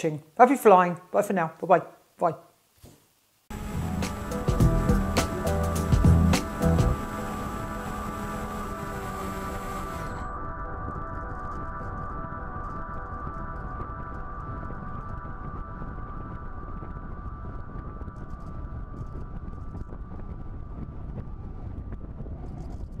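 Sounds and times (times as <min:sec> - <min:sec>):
model plane engine drone: 0:03.5 - 0:10.8
wind rushing over microphone: 0:13.8 - 0:23.0.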